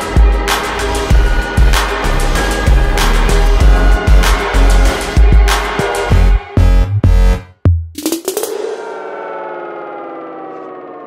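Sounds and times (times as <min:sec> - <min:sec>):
electronic tone gliding down: 0:08.5 - 0:11.0.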